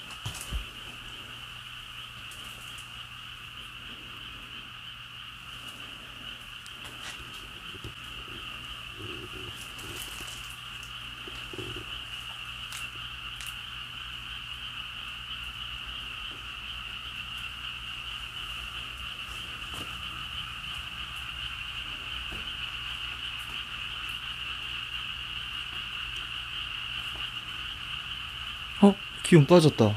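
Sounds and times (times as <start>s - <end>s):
frogs calling: 0.0s - 29.9s.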